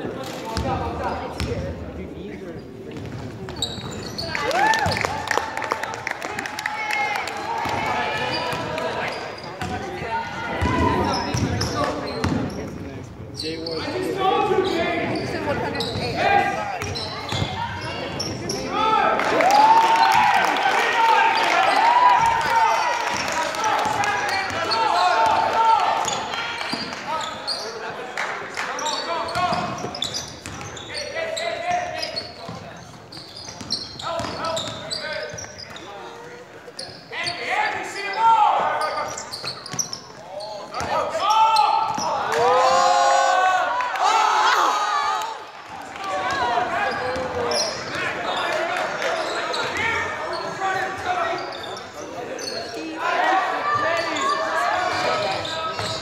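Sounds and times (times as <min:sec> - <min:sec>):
sneakers squeaking: 0:00.5 - 0:05.1, 0:07.6 - 0:18.8, 0:23.0 - 0:28.0, 0:28.7 - 0:42.3, 0:46.1 - 0:56.0.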